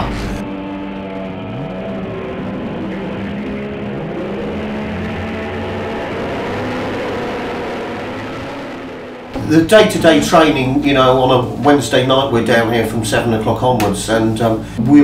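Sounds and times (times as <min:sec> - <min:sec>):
outboard boat engines at speed: 0:00.4 - 0:09.3.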